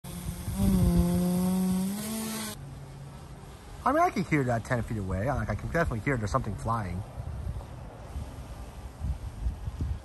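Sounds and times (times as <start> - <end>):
drone rotor buzzing: 0.0 - 2.6.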